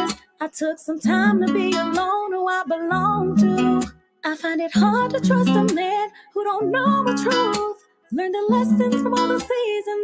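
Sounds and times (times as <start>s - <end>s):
acoustic guitar: 0.0s - 10.0s
woman singing: 0.0s - 10.0s.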